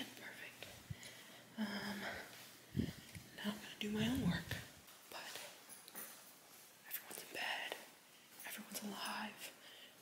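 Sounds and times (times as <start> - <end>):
woman whispering: 0.0 - 0.8, 1.5 - 2.5, 3.2 - 5.6, 6.8 - 9.6.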